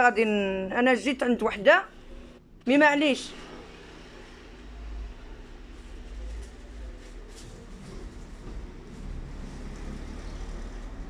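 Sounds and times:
low rumble: 0:03.3 - 0:11.0.

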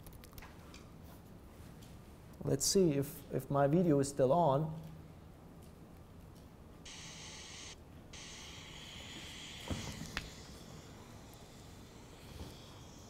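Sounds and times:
jet engine hiss over speakers: 0:06.9 - 0:13.0.

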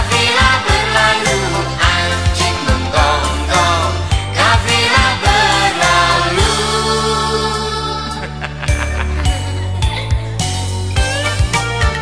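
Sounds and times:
bass and drums: 0:00.0 - 0:12.0.

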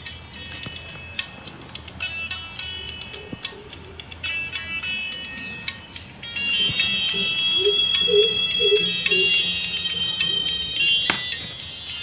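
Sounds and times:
tinny song from earbud speaker: 0:00.0 - 0:12.0
handling knock: 0:11.0 - 0:11.6.

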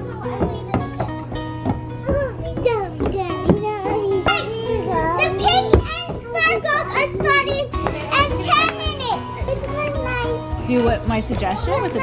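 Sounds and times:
music with held notes: 0:00.0 - 0:12.0.

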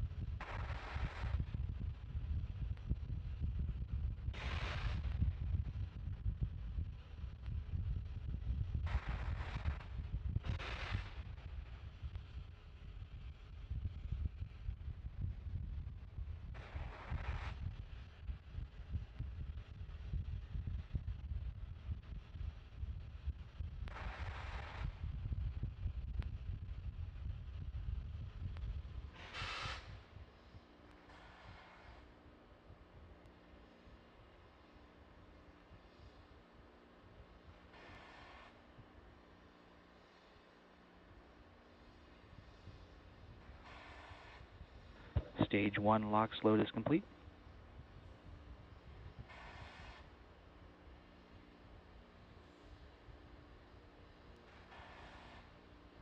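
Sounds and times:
wind buffeting microphone: 0:00.0 - 0:30.6, 0:42.2 - 0:45.8, 0:46.9 - 0:50.4
low rumble with steady hum: 0:00.0 - 0:56.0
hiss of venting gas: 0:29.2 - 0:32.1.

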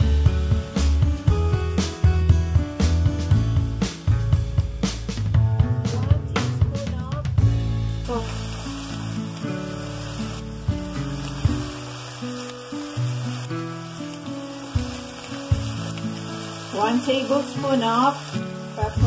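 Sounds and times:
meat sizzling in a frying pan: 0:00.0 - 0:02.6, 0:07.5 - 0:19.0
background music of held notes: 0:00.0 - 0:19.0.

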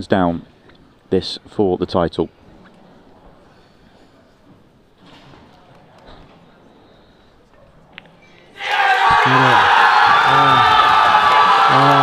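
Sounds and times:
crowd cheering and shouting: 0:08.6 - 0:12.0.

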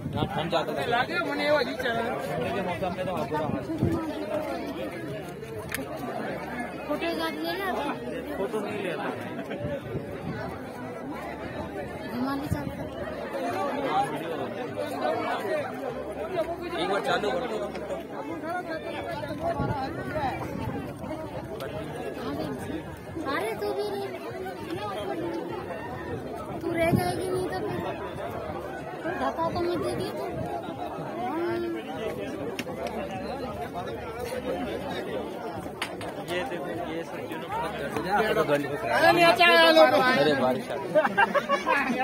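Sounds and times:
people chattering: 0:00.0 - 0:42.0.

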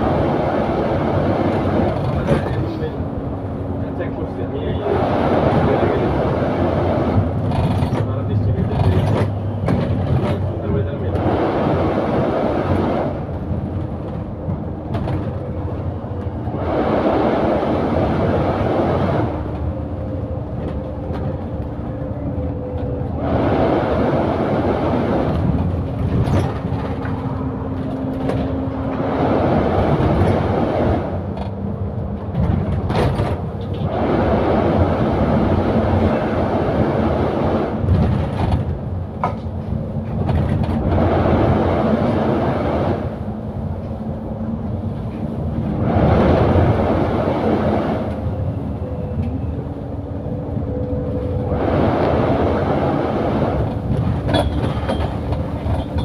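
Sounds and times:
bus engine changing gears: 0:00.0 - 0:56.0
road noise: 0:00.0 - 0:56.0
bodywork clicks and rattles: 0:07.2 - 0:11.2, 0:25.3 - 0:29.0, 0:31.3 - 0:33.9, 0:37.8 - 0:41.0, 0:53.6 - 0:56.0.

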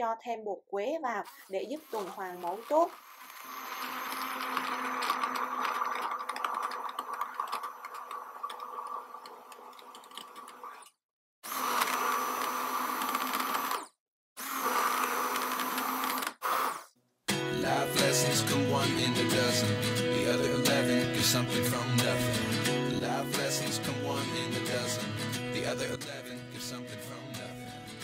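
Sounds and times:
immersion blender motor running: 0:01.4 - 0:10.7, 0:11.4 - 0:16.9.

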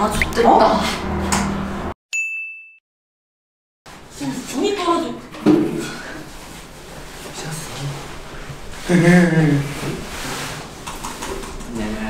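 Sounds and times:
bell-like ding: 0:02.1 - 0:02.8.

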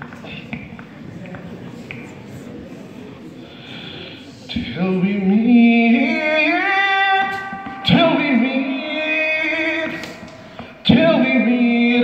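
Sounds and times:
man singing a hymn solo: 0:04.5 - 0:12.0.

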